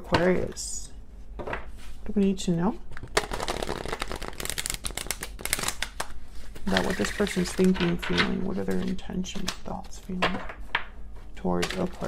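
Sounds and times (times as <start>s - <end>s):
cards being shuffled: 2.9s - 10.5s, 11.6s - 12.0s.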